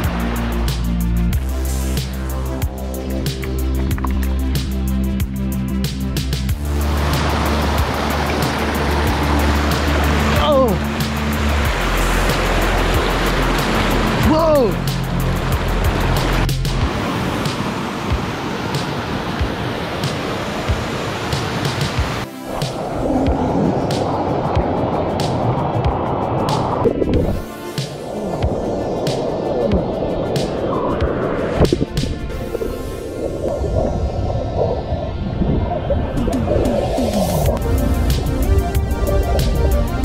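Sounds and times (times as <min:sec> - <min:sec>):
rushing whitewater: 0:00.0 - 0:02.6, 0:06.6 - 0:40.0
background music: 0:00.0 - 0:40.0.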